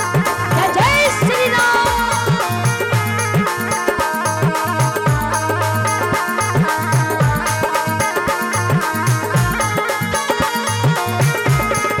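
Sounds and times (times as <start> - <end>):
devotional music with steady beat: 0.0 - 12.0.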